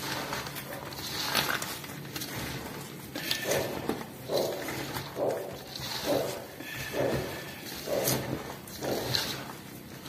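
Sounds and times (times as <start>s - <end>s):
hands squelching wet food mixture: 0.0s - 10.0s.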